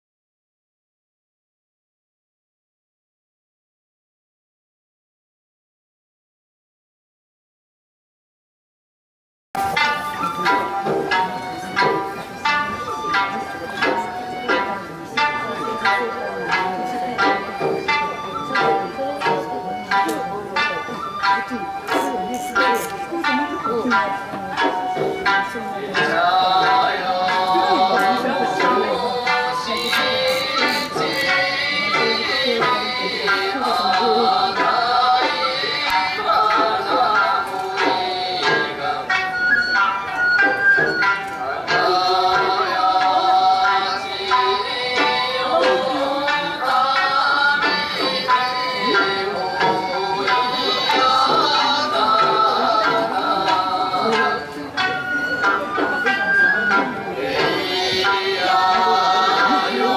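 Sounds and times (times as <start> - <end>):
plucked lute notes: 9.6 - 59.9
person singing long notes: 21.5 - 39.3, 41.4 - 59.9.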